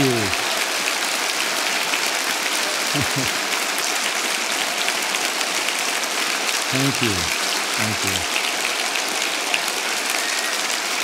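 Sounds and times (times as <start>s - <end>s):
large audience applauding: 0.0s - 11.0s.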